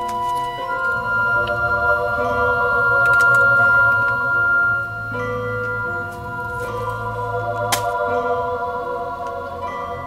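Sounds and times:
organ playing held chords: 0.0 - 10.0.

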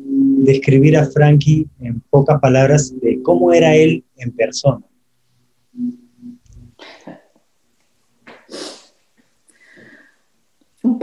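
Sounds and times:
woman murmuring: 5.8 - 7.2
woman breathing: 6.7 - 7.3, 8.4 - 10.3
puff of air through nose: 8.5 - 8.9.

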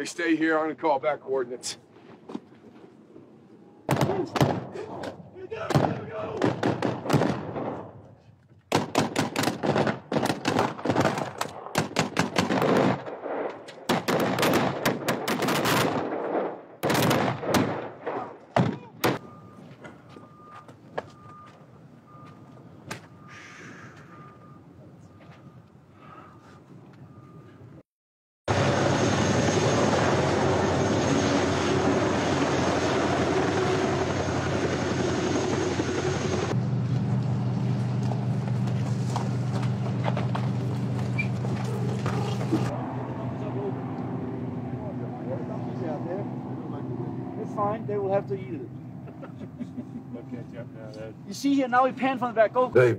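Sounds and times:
rifle gunfire: 8.7 - 19.2.

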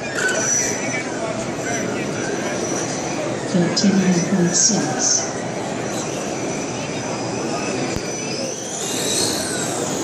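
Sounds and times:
toy car electric motor whining: 5.9 - 10.0.

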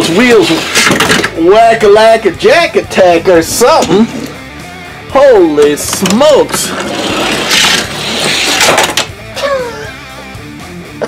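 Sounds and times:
toy cars rattling on plastic track: 0.0 - 1.4, 6.0 - 9.1.

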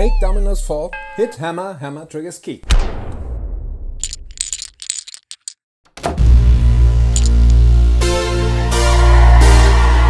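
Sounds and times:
dominoes toppling clicks: 4.0 - 5.6, 7.2 - 7.6.

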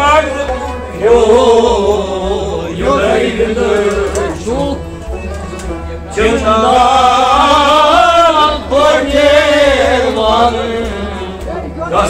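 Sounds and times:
man singing: 0.0 - 5.0, 6.1 - 12.0
low pulsing beat: 1.0 - 12.0.

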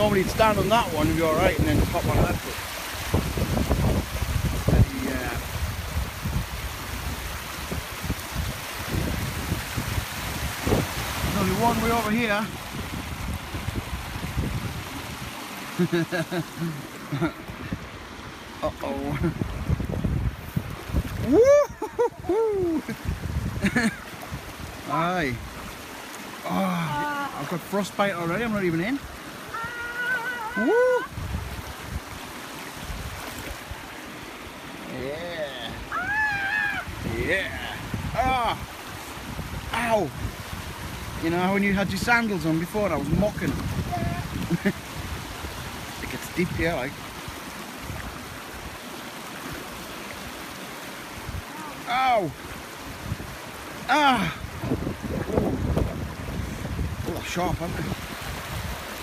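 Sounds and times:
wind noise on microphone: 0.0 - 15.6, 17.2 - 25.8, 29.1 - 33.9, 35.7 - 48.8, 52.4 - 59.0
stream water running over stones: 0.0 - 59.0.

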